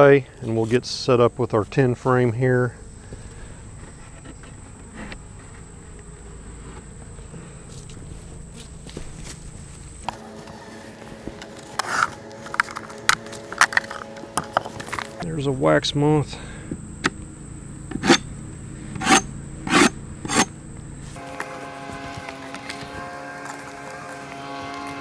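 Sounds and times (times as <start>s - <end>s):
honey bees buzzing: 16.0s - 25.0s.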